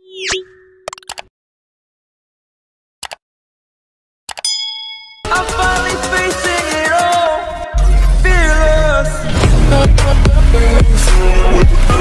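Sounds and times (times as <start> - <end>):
bell-like ding: 4.5 - 5.5.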